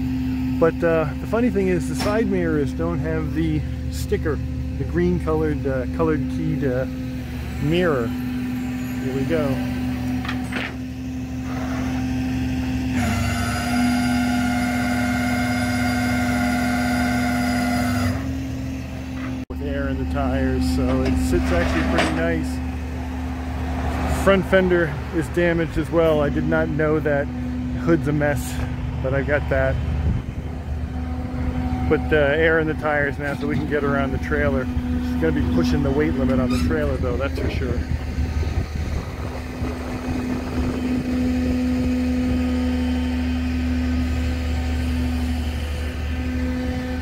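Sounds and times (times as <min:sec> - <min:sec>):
vehicle engine idling: 0:00.0 - 0:13.1, 0:18.2 - 0:47.0
winch whining: 0:00.0 - 0:47.0.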